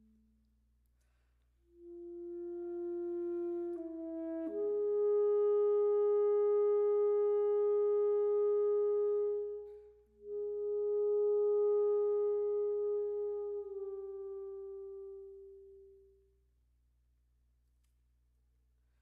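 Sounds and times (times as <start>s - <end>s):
alto saxophone long notes: 1.7s - 16.2s.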